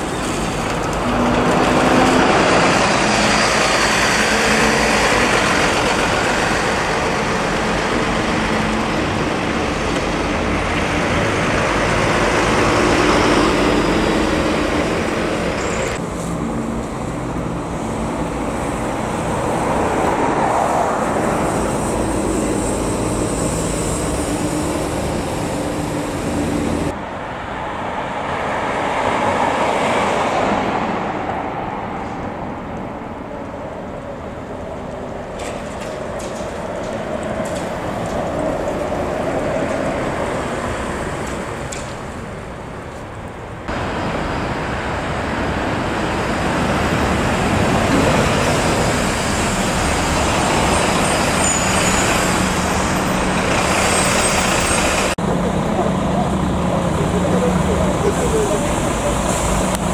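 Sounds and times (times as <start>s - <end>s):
buses and cars driving past: 0.0s - 59.9s.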